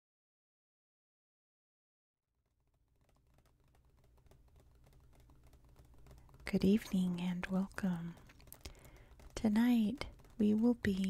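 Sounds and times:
fingernails tapping on paper: 2.5s - 11.0s.

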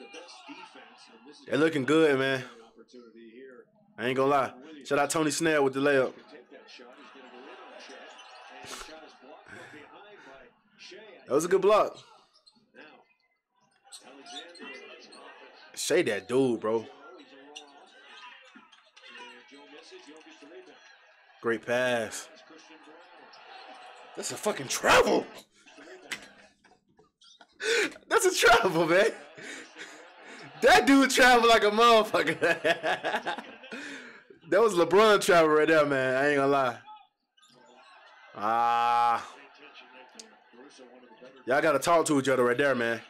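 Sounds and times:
man's voice: 1.5s - 2.8s, 24.2s - 25.4s, 27.6s - 36.8s
commentator talking: 24.2s - 25.4s, 27.6s - 36.8s.

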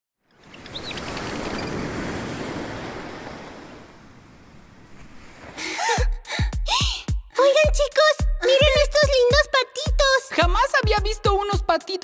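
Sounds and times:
rushing water: 0.3s - 5.5s.

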